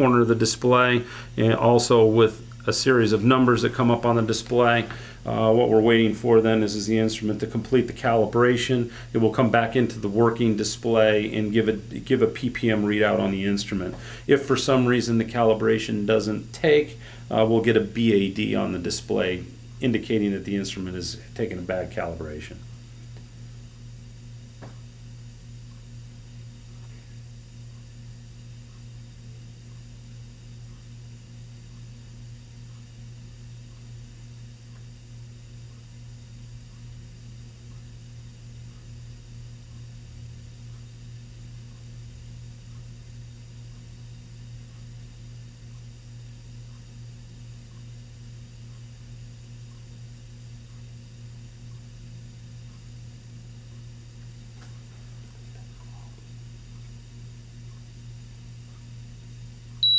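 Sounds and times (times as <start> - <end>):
steady low hum with hiss: 0.0 - 59.9.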